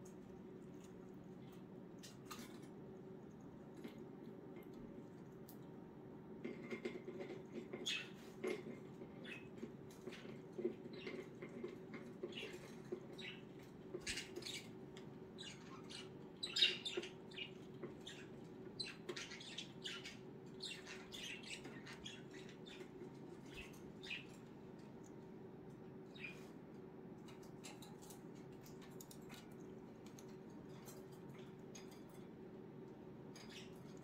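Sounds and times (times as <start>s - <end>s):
faint low hum: 0.0s - 34.0s
budgerigars chirping: 15.4s - 22.9s.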